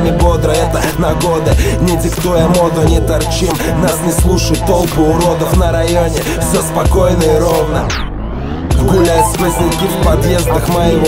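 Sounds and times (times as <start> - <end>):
drums: 0.0 - 7.8
rapping over a beat: 0.0 - 8.0, 8.7 - 11.0
bass line: 8.8 - 10.8.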